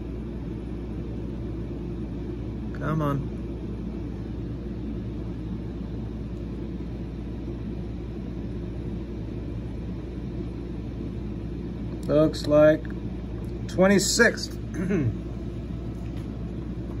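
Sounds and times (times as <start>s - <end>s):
low background hum and rumble: 0.0s - 17.0s.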